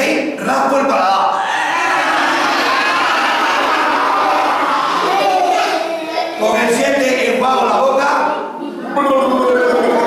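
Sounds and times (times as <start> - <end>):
children singing together: 1.4 - 6.8.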